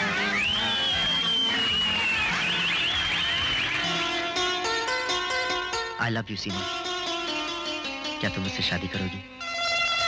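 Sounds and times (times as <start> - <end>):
warbling whistles: 0.1 - 4.0
piercing two-finger whistle: 0.2 - 4.0.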